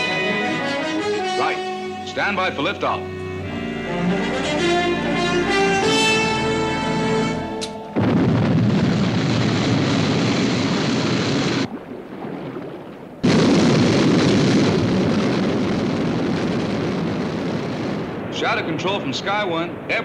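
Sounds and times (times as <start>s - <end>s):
rocket launch roar: 8.0s - 12.6s, 13.2s - 18.8s.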